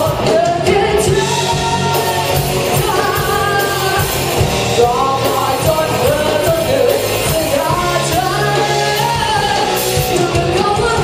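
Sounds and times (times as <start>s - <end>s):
bass guitar: 0.0s - 11.0s
drums: 0.0s - 11.0s
electric guitars: 0.0s - 11.0s
lead vocal singing: 0.0s - 11.0s.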